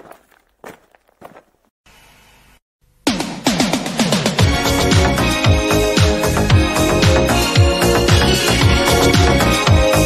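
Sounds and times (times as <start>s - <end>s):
footsteps: 0.0s - 1.7s.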